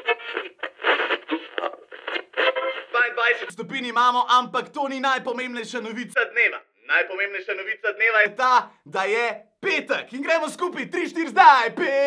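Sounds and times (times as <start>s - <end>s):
speech from radio speaker: 0.0s - 12.0s.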